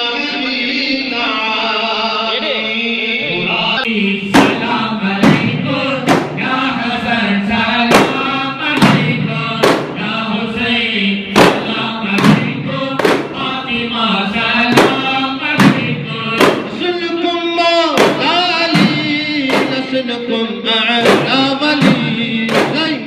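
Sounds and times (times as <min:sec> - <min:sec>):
men chanting together: 0:00.5 - 0:23.0
frame drums struck in unison: 0:04.3 - 0:10.4, 0:11.3 - 0:13.6, 0:14.4 - 0:17.0, 0:17.9 - 0:20.0, 0:21.0 - 0:23.0.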